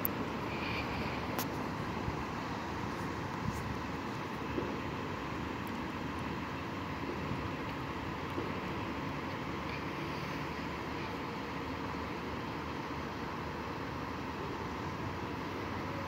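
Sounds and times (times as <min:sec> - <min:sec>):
bus engines idling: 0:00.0 - 0:16.0
faint steady whine: 0:00.0 - 0:16.0.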